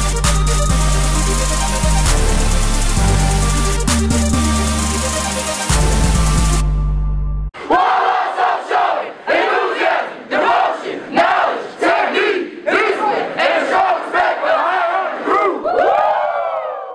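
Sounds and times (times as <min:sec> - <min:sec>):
group shouting a chant: 0:07.6 - 0:16.8.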